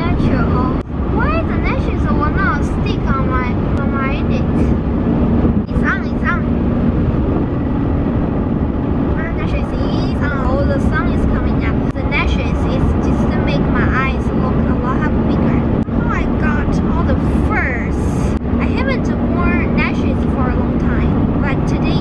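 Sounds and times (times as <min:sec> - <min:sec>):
car road and engine rumble: 0:00.0 - 0:22.0
person speaking: 0:09.1 - 0:22.0.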